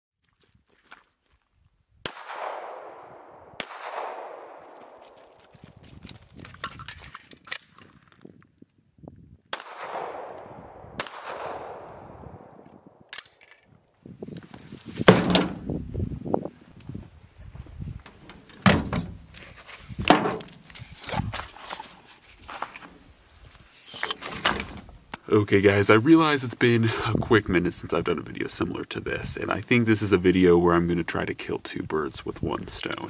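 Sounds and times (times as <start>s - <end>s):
handgun shots with echo: 2.1s - 5.2s, 9.5s - 13.4s
loud knocks and rattles: 15.1s - 15.6s.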